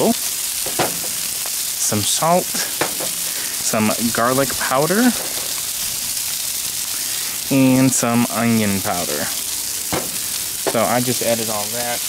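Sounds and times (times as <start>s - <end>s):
vegetables sizzling on a griddle: 0.0s - 12.0s.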